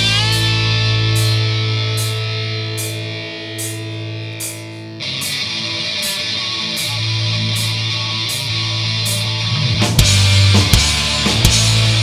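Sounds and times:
electric guitar chord ringing: 0:00.0 - 0:12.0
live hard rock band playing: 0:00.0 - 0:12.0.

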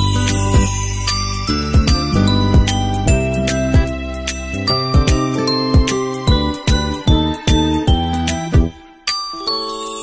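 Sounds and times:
music with steady beat and jingling: 0:00.0 - 0:10.0.

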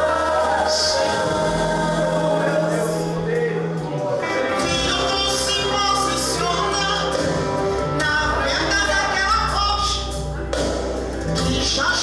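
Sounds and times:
singing over backing track: 0:00.0 - 0:12.0.

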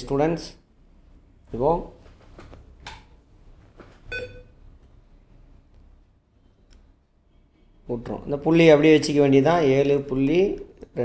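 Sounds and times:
low background hum: 0:00.0 - 0:11.0
short electronic beep: 0:04.1 - 0:04.5.

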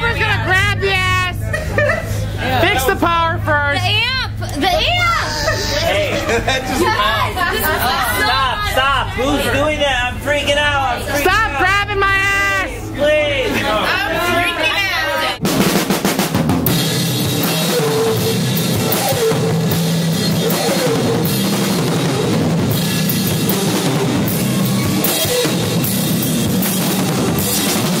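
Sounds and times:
live band playing loudly: 0:15.4 - 0:28.0.

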